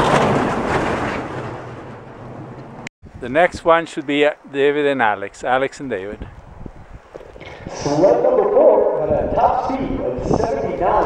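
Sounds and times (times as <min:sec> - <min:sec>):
bobsled runners rumbling on ice: 0:00.0 - 0:02.8.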